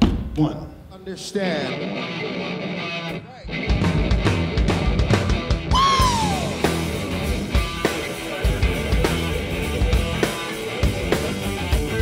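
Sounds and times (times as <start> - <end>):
rock band playing: 1.4 - 12.0.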